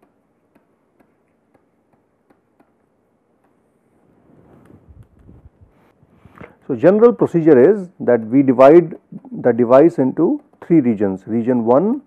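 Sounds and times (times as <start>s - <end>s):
stylus tapping on tablet: 0.0s - 3.7s, 9.7s - 12.0s.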